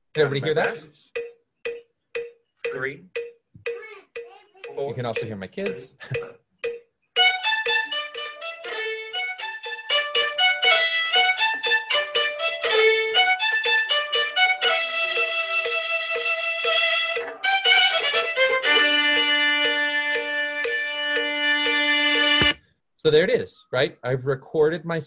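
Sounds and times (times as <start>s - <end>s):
plucked backing track: 0.2s - 22.6s
bowed violin melody: 7.2s - 22.6s.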